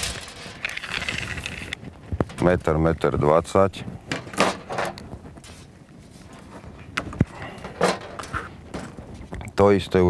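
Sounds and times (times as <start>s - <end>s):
fishing line rustling scrape: 5.4s - 6.6s.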